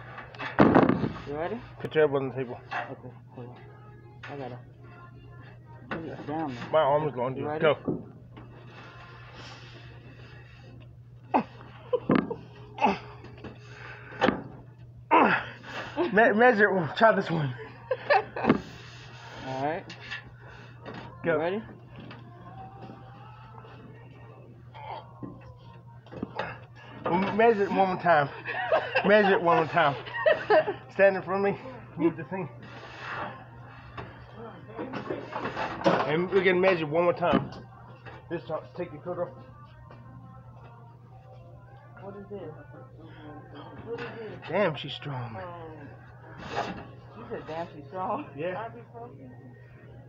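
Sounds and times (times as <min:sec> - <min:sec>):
faint background music: 0:00.0 - 0:50.0
steady low hum: 0:00.0 - 0:50.0
store background noise: 0:00.0 - 0:50.0.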